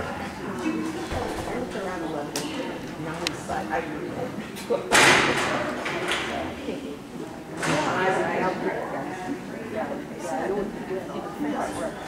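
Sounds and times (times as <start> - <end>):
indistinct speech in a hall: 0.0 - 12.0.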